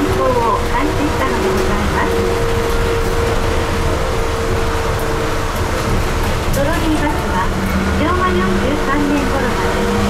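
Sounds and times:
trolleybus rumble: 0:00.0 - 0:10.0.

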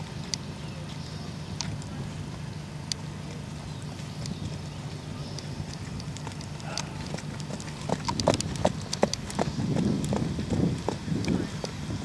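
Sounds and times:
horse hooves on gravel path: 0:03.3 - 0:12.0.

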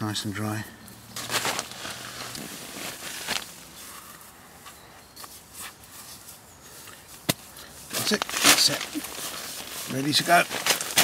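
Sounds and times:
quiet handling sounds: 0:00.9 - 0:11.0
laces swishing through eyelets: 0:01.2 - 0:11.0.

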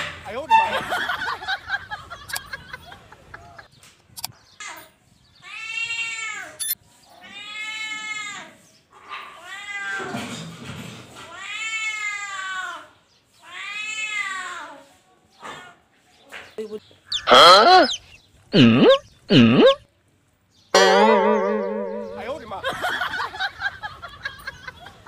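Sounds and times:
kitten meowing: 0:17.1 - 0:19.8.

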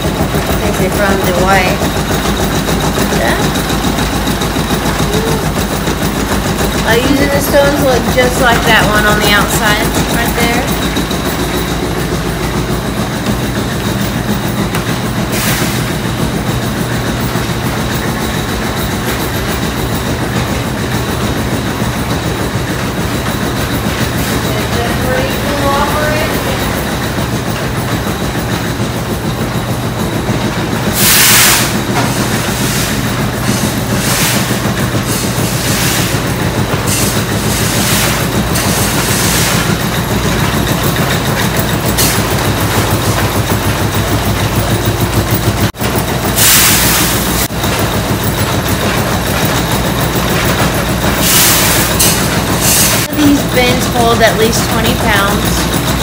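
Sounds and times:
gristmill machinery rumbling: 0:00.0 - 0:56.0.

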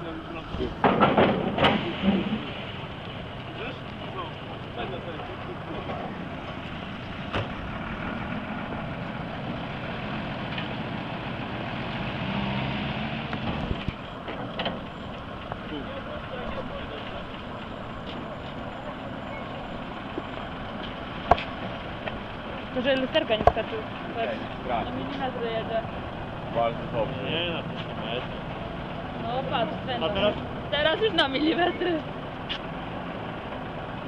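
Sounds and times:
vehicle engine running: 0:00.0 - 0:34.0.

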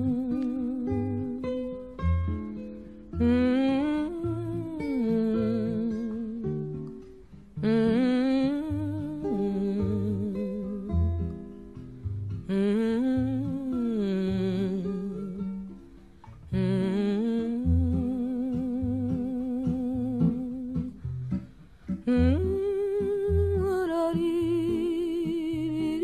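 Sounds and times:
person humming slow melody: 0:00.0 - 0:01.7, 0:03.1 - 0:07.0, 0:07.6 - 0:11.5, 0:12.4 - 0:15.8, 0:16.5 - 0:26.0
acoustic guitar: 0:00.0 - 0:26.0.

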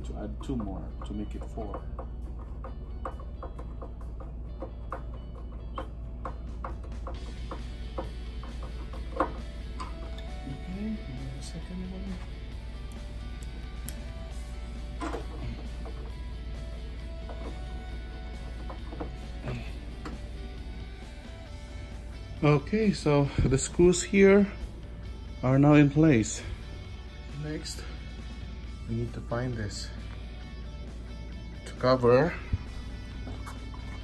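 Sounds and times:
background music: 0:00.0 - 0:34.0
knocks: 0:00.6 - 0:09.9.

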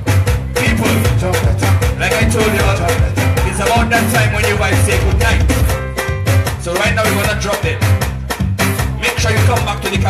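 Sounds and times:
live band dance music: 0:00.0 - 0:10.0.

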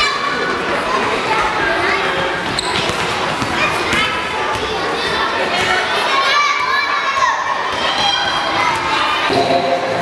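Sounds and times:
lower chatter: 0:00.0 - 0:10.0.

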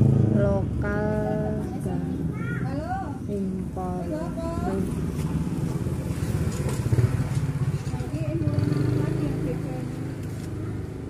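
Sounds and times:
vehicle engine passing: 0:00.0 - 0:11.0.

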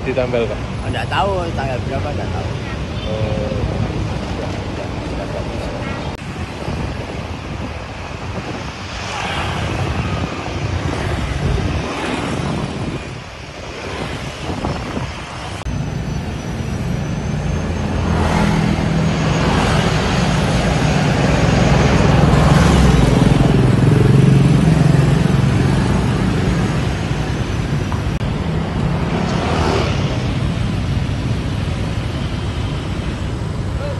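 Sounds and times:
cars and motorbikes passing: 0:00.0 - 0:33.9.

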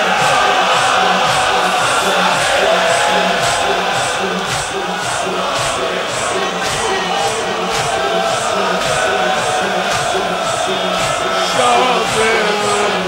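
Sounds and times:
crowd beating chests in unison: 0:00.0 - 0:13.0
crowd singing: 0:00.0 - 0:13.0.

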